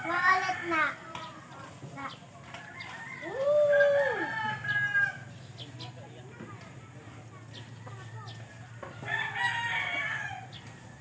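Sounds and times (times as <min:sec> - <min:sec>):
higher-pitched rooster crow: 0:02.6 - 0:05.2, 0:08.5 - 0:10.9
rooster crowing: 0:02.7 - 0:05.2, 0:09.0 - 0:10.4.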